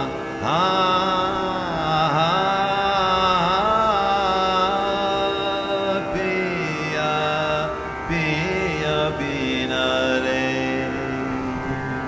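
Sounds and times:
classical singing with sliding notes: 0:00.0 - 0:12.0
steady drone: 0:00.0 - 0:12.0.

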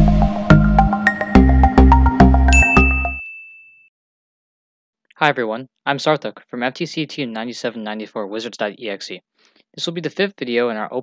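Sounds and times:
high bright ding: 0:02.5 - 0:03.9.

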